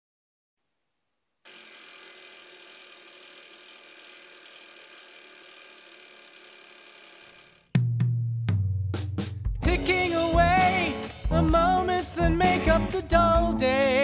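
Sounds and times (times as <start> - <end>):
mechanical alarm clock ringing: 1.5 - 7.7
drum kit and bass guitar: 7.8 - 14.0.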